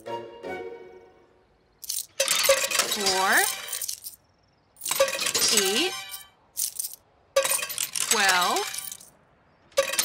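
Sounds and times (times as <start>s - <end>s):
tokens clinking into coin slot: 1.8s - 10.0s.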